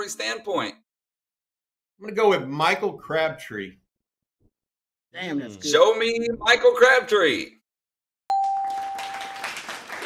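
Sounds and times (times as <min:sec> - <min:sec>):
bright ding chime: 0:08.3 - 0:09.1.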